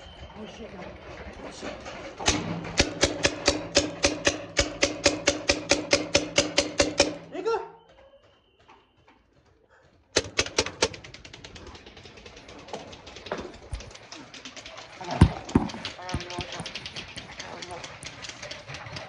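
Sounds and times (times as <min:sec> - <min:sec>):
paintball markers firing rapidly: 0:02.2 - 0:07.3, 0:10.1 - 0:14.3, 0:14.9 - 0:19.0.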